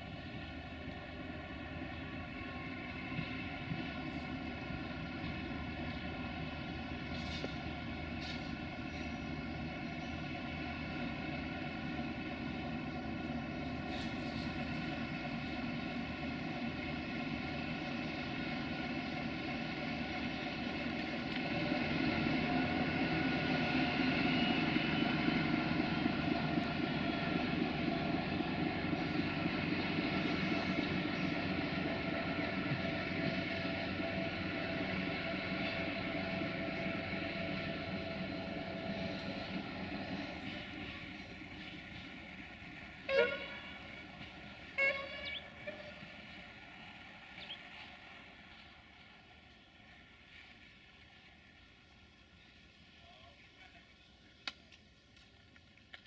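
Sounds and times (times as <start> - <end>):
diesel locomotive engine running: 0.0 - 56.0.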